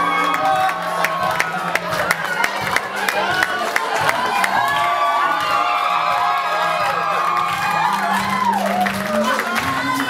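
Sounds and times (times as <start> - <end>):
crowd cheering and whooping: 0.0 - 10.0
loud dance music: 0.0 - 10.0.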